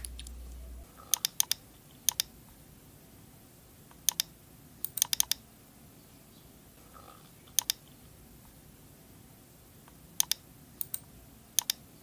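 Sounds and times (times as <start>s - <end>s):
mouse and keyboard clicks: 0.0s - 2.3s, 3.9s - 5.4s, 7.5s - 7.9s, 9.9s - 11.8s.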